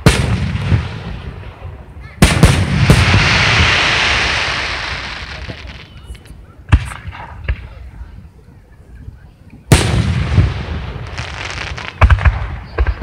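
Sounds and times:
firework hiss: 0.0 - 7.8, 9.7 - 13.0.

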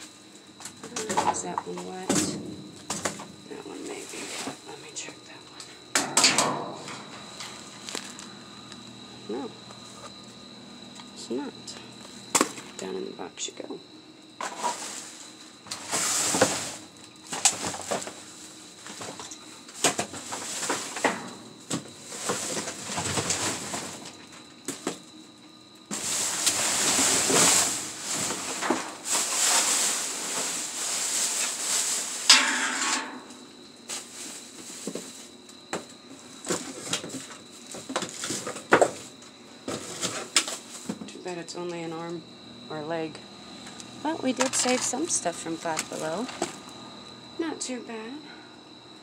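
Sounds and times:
plastic and cardboard crinkling: 36.2 - 41.1, 44.2 - 46.6.

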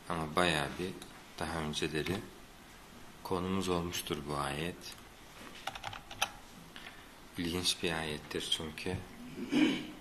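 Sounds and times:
keyboard keystrokes: 5.6 - 6.4.

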